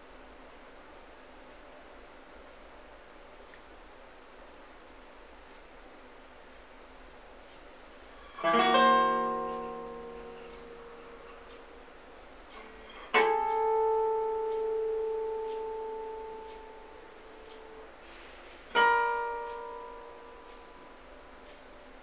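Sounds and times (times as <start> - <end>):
classical guitar chords: 8.3 - 11.9, 12.6 - 21.5.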